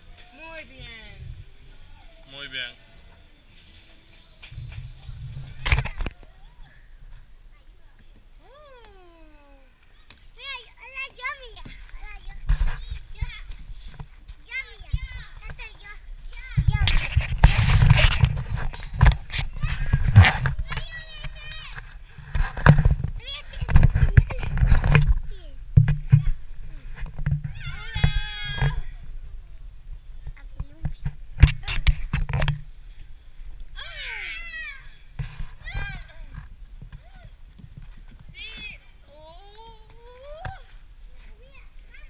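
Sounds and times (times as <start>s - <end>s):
child's voice: 7.5s - 13.5s, 14.5s - 17.1s, 20.6s - 21.8s, 23.2s - 24.6s, 25.2s - 26.4s, 30.4s - 31.0s, 38.4s - 42.0s
small child squealing: 33.8s - 35.0s.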